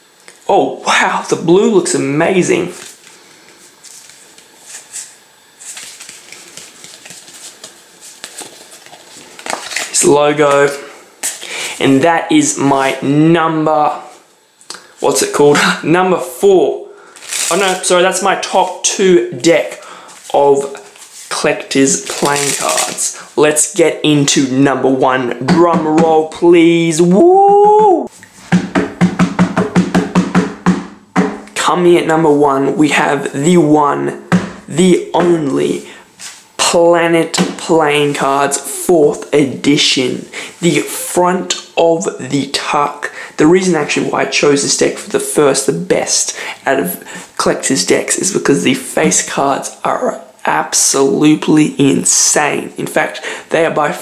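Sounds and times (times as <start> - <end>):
playing cards sliding and clicking: 2.8 - 10.0, 11.2 - 11.5
palms slapping tabletop: 3.8 - 9.9, 27.2 - 31.6.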